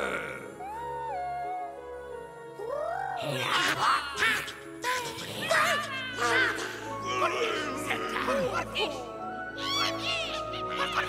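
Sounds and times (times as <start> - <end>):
background music chords: 0.0 - 11.0.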